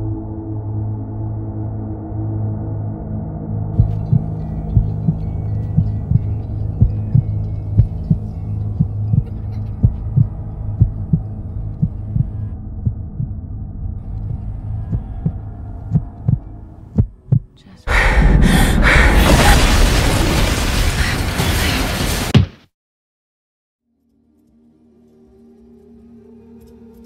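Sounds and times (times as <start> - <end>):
low drone: 0.0 - 19.7
heartbeat-like thumping pulse: 3.8 - 13.4, 14.0 - 17.6.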